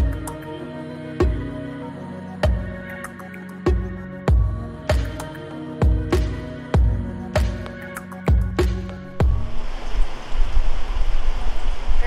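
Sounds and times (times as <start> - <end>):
wind buffeting microphone: 9.2 - 12.0.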